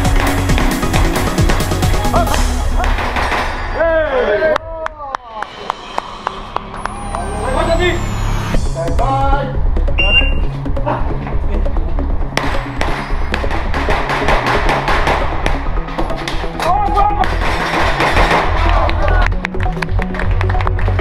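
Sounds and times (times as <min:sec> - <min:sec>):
background music with beat: 0:00.0 - 0:03.5, 0:05.4 - 0:21.0.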